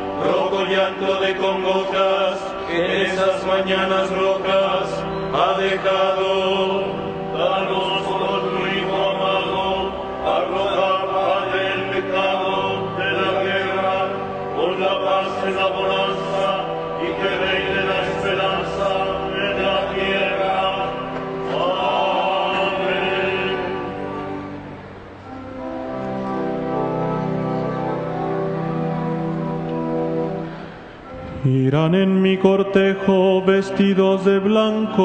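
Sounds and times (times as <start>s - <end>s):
liturgical chant: 0.0s - 25.6s, 31.0s - 35.0s.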